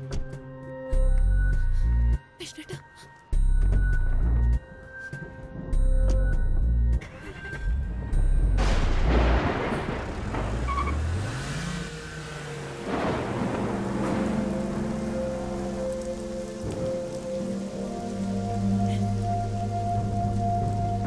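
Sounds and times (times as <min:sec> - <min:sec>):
thunder rumble: 0:07.7 - 0:21.0
heavy rain pouring: 0:08.6 - 0:21.0
held notes of background music: 0:12.0 - 0:21.0.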